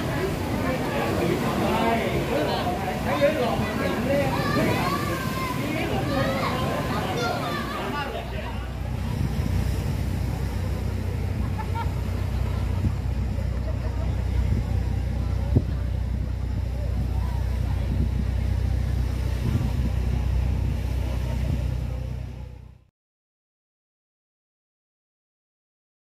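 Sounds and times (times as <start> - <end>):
crowd chatter: 0.0 - 22.9
surf: 0.0 - 22.9
wind on microphone: 8.2 - 22.7.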